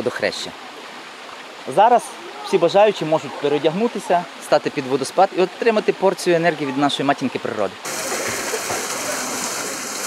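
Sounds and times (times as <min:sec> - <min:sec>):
waterfall pouring into pool: 0:06.1 - 0:10.0.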